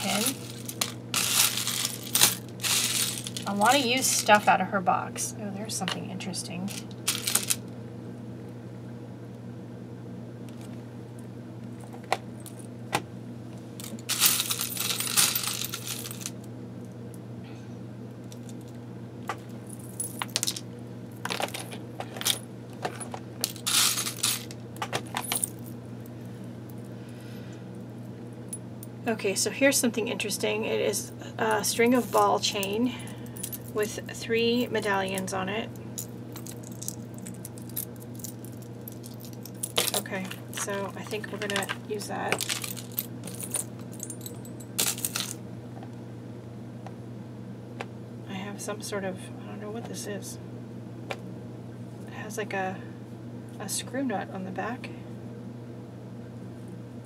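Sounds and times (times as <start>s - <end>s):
metal trinkets clinking in plastic box: 0.0s - 4.4s, 6.7s - 7.6s, 13.8s - 16.3s, 21.2s - 25.7s, 36.0s - 45.4s.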